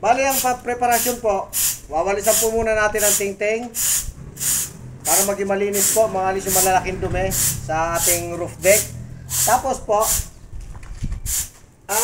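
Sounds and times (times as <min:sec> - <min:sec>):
brush sweeping concrete: 0:02.3 - 0:10.3.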